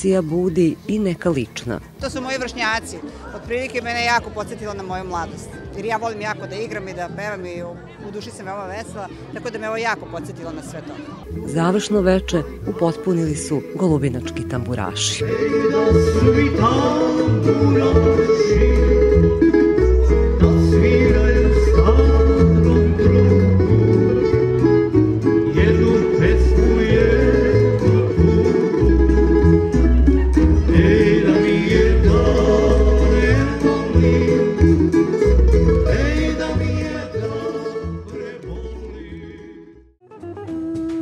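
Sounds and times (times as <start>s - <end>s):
double bass line: 0.0s - 41.0s
men singing: 15.0s - 19.6s, 20.2s - 24.3s, 25.4s - 28.8s, 30.6s - 39.8s
plucked tamburicas: 15.2s - 38.7s, 40.0s - 41.0s.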